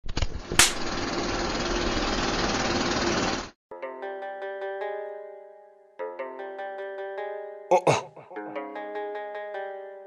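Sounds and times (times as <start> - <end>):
rattling mechanical noise: 0.0 - 3.5
sharp burst: 0.6 - 1.0
plucked-string music: 3.7 - 10.0.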